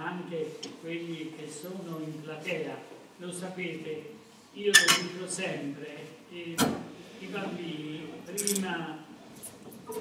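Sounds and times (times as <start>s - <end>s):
person speaking: 0.0s - 9.2s.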